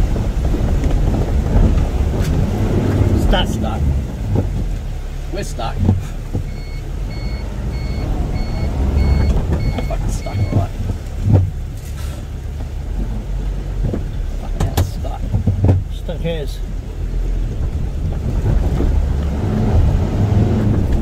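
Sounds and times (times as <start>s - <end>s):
low engine rumble: 0.0s - 21.0s
reversing alarm beeps: 6.5s - 10.7s.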